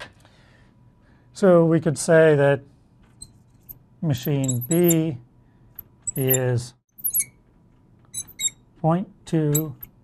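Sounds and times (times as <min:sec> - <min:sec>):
marker squeaking on glass: 0:03.2 - 0:05.1, 0:06.0 - 0:07.4, 0:08.1 - 0:08.6, 0:09.5 - 0:09.9
person speaking: 0:04.0 - 0:05.2, 0:06.1 - 0:06.8.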